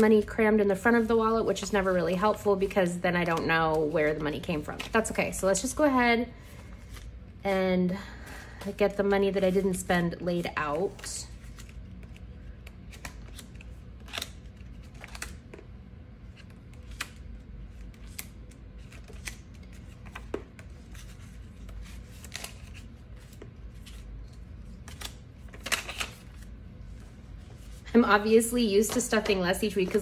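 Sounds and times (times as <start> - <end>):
banknotes rustling and crinkling: 0.0 - 7.4, 8.1 - 30.0.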